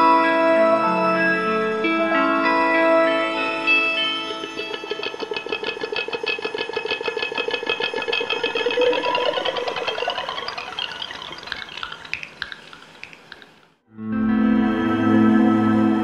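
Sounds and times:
electric guitar fluttering shimmer: 0:02.0 - 0:12.1.

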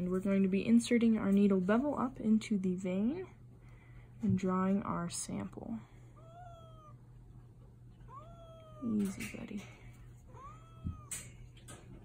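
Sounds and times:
cat meowing: 0:06.2 - 0:07.0, 0:08.0 - 0:09.0, 0:10.2 - 0:11.4.

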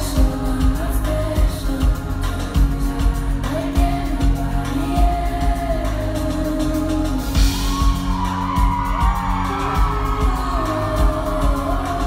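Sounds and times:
live pop band with woman singing: 0:00.0 - 0:12.0
crowd whooping: 0:07.4 - 0:12.0.

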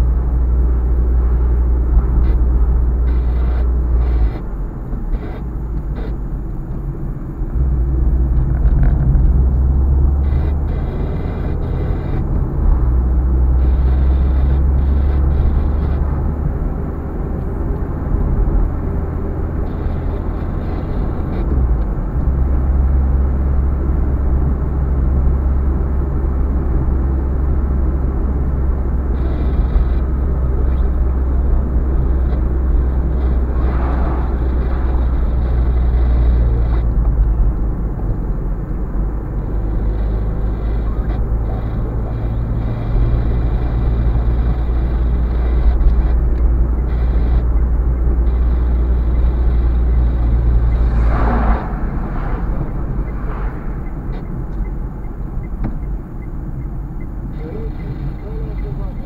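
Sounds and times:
car engine and tyre drone: 0:00.0 - 0:59.0
lorry passing: 0:50.4 - 0:55.3.

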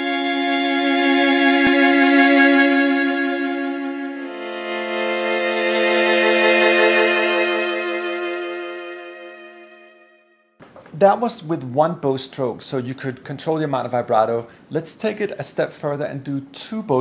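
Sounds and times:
solo violin with vibrato: 0:00.0 - 0:10.2.

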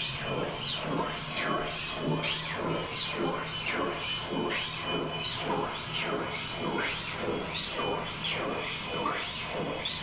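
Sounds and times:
low electronic drone: 0:00.0 - 0:10.0.

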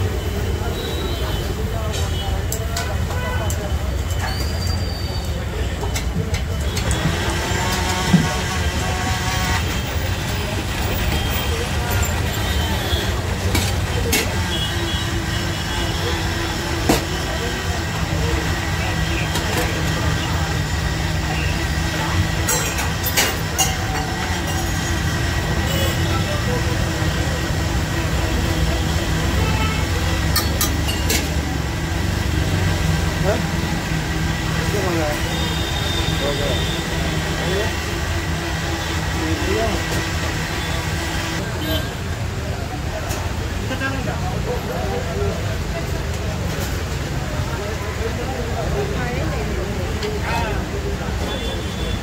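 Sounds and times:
metal utensils clinking on griddle: 0:22.5 - 0:24.8, 0:30.3 - 0:31.3.

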